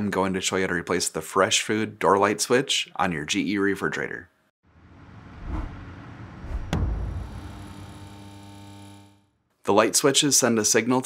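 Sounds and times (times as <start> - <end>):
whooshes: 4.7 - 7.6
deep low hits: 4.7 - 8.2.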